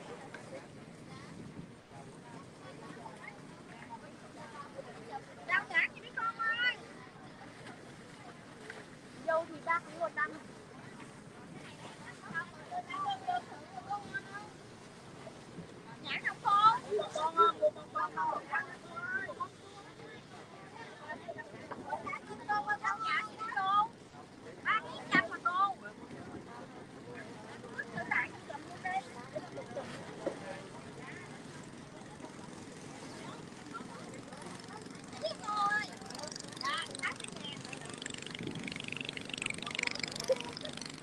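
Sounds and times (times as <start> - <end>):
boat engine running: 0.0 - 41.0
people's voices: 0.0 - 41.0.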